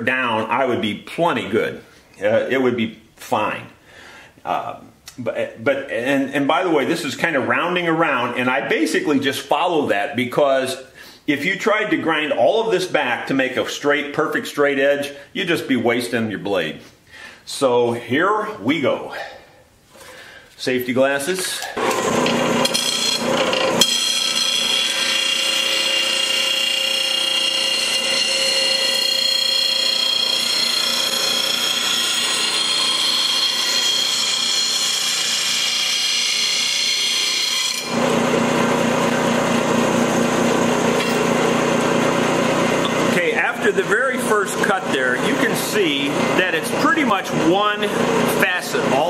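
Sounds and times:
person speaking: 4.4 - 16.9, 20.6 - 21.8, 42.9 - 49.0
grinder grinding steel: 21.7 - 49.0
grinder running tone: 21.8 - 49.0.

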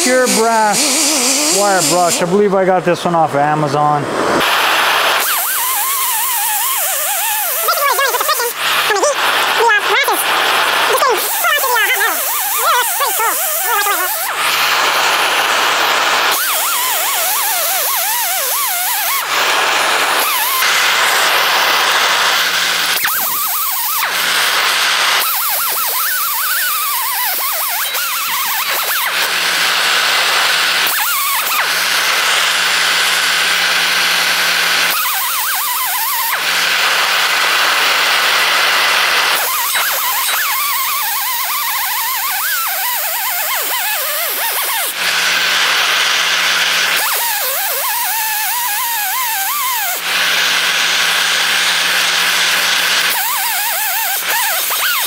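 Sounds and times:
air grinder hissing and whining: 0.0 - 55.0.

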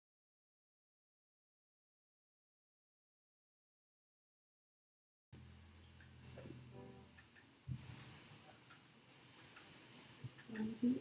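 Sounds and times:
faint electrical hum: 5.4 - 11.0
faint squeak: 5.9 - 8.6.

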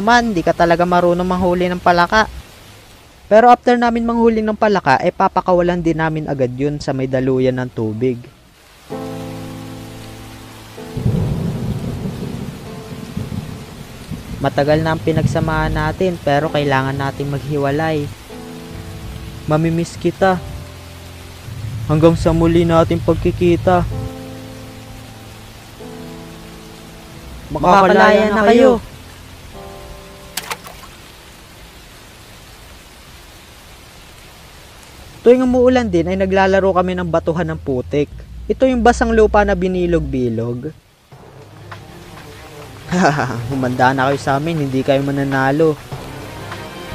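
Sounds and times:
rain falling: 0.0 - 46.9
thunder rumbling: 10.8 - 17.8
sharp clicks: 30.4 - 30.9.

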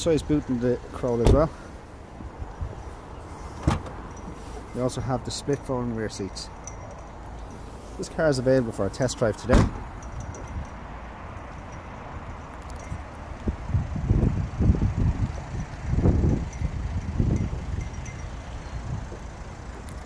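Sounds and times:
wind buffeting microphone: 12.2 - 20.0.

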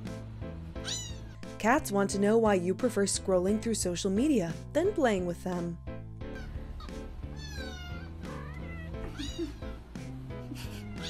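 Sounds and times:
background music: 0.0 - 11.0
cat meowing: 0.8 - 1.4, 6.3 - 9.8, 10.8 - 11.0.

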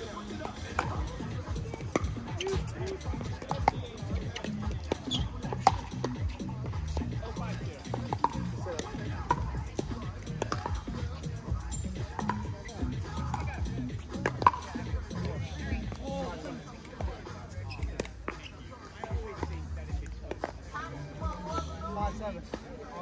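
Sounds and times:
music: 0.0 - 23.0.

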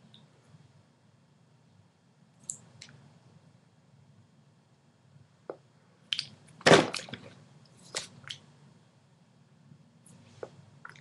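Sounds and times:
wet lip clicks and smacks: 6.1 - 6.4.

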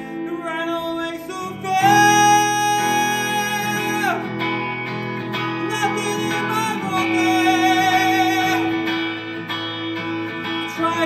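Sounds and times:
man singing: 0.0 - 4.4, 5.6 - 9.1, 10.5 - 11.0
electric guitar strumming: 0.0 - 11.0.

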